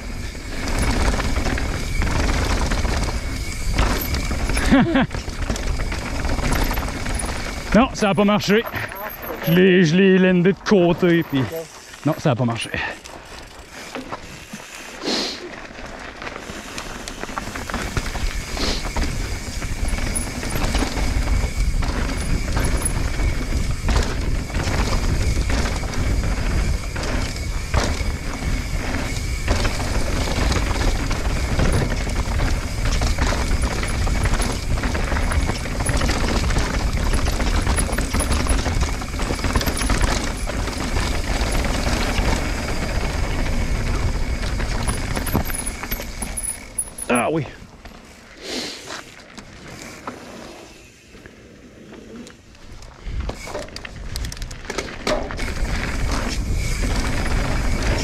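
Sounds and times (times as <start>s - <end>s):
bike knocks and rattles: 0.0s - 11.9s, 15.6s - 48.1s, 52.5s - 58.0s
bike tyre roar: 0.0s - 58.0s
wind rumble on microphone: 17.9s - 46.7s.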